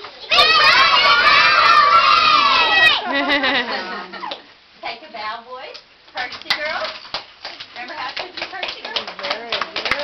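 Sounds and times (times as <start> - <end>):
single children's voices: 0.0 - 3.1
children shouting together: 0.3 - 3.1.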